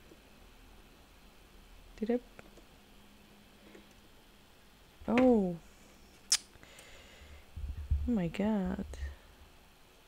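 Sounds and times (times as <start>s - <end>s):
dull low bumps: 7.5s - 9.0s.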